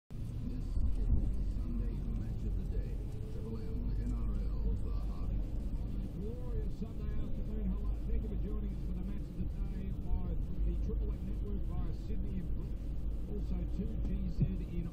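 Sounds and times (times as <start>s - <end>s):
car interior rumble: 0.1s - 14.9s
muffled voice: 0.2s - 14.9s.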